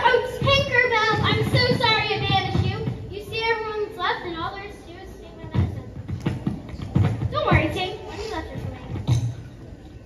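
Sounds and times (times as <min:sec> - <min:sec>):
children's voices: 0:00.0 - 0:10.0.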